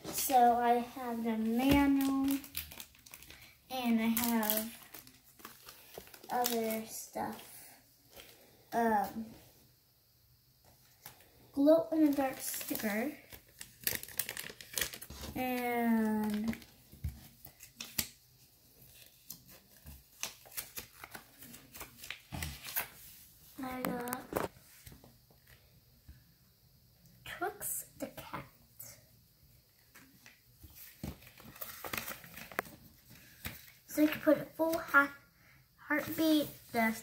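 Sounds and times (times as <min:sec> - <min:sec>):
packaging wrapper crinkling: 0:01.8 - 0:06.9, 0:12.0 - 0:18.2, 0:18.8 - 0:23.0, 0:30.0 - 0:33.8
paper leaflet rustling: 0:18.8 - 0:24.9, 0:30.0 - 0:34.9.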